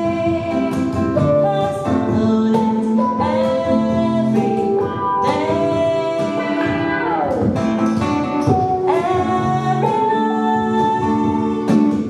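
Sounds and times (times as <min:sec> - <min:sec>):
woman singing: 0:00.0 - 0:07.7, 0:08.5 - 0:12.0
acoustic and electric guitars: 0:00.0 - 0:12.0.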